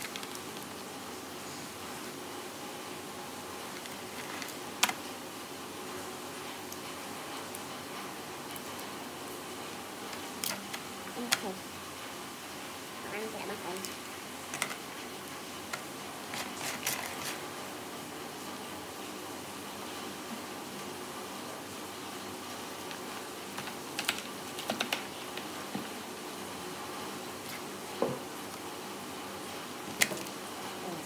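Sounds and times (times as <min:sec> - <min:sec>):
crab shells clicking and clattering: 0:00.0 - 0:00.7, 0:13.8 - 0:14.9, 0:22.8 - 0:25.6
steady background noise: 0:00.0 - 0:31.0.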